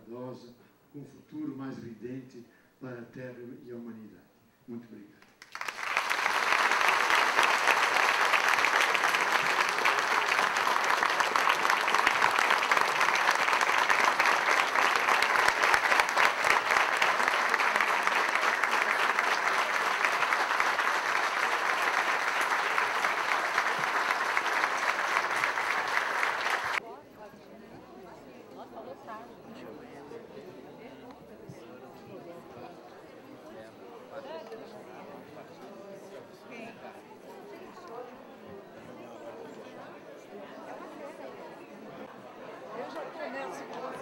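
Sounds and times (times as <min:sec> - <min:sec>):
audience applauding: 0:05.3 - 0:26.8.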